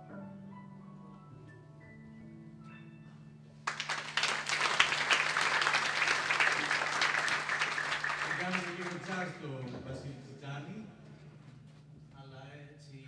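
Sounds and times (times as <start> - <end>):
piano notes: 0.0 - 3.7
audience applauding: 3.7 - 9.4.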